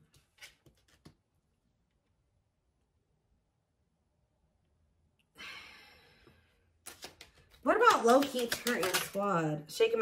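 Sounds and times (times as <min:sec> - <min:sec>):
person sighing: 0:05.3 - 0:06.4.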